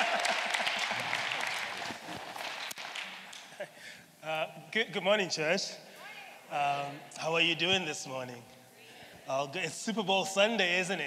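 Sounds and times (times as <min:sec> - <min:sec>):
congregation applauding: 0:00.0 - 0:04.0.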